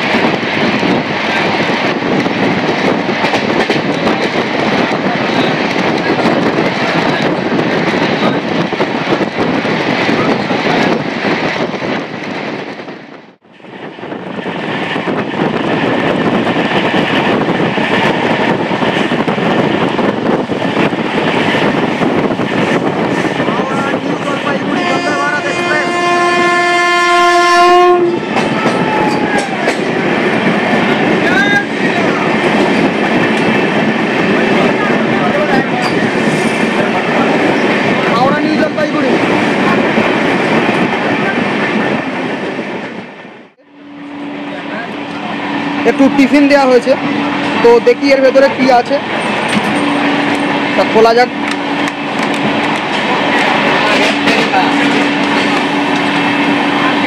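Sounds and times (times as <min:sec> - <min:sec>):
train running at speed: 0:00.0 - 0:57.0
train horn: 0:24.7 - 0:29.5.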